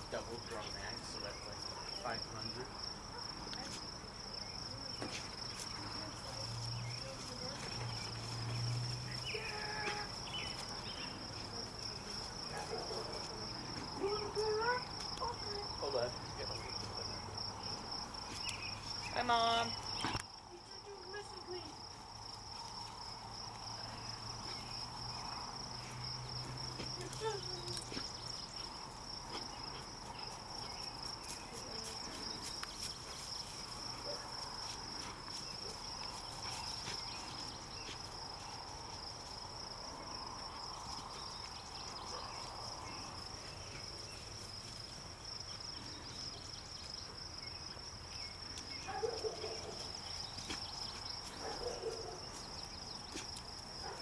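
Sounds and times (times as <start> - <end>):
crickets trilling: 0.0 - 54.0.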